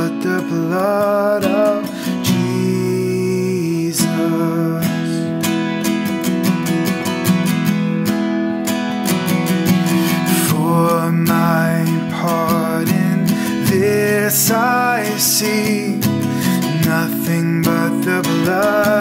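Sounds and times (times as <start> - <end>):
man singing: 0.0 - 5.4, 10.1 - 19.0
acoustic guitar strumming: 0.0 - 19.0.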